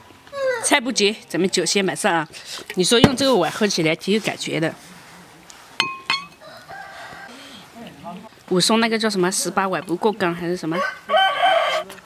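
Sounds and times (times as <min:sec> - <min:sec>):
rooster crowing: 0:06.3 - 0:07.6, 0:10.7 - 0:12.0.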